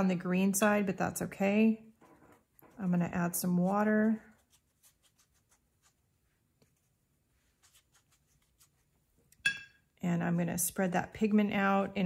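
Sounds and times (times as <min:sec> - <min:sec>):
paintbrush dabbing on paper: 0:02.4 - 0:09.3.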